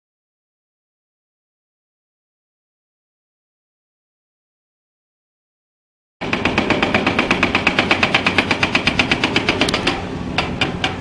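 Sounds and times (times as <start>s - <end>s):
excavator running: 6.2s - 11.0s
hydraulic rock breaker hammering: 6.2s - 11.0s.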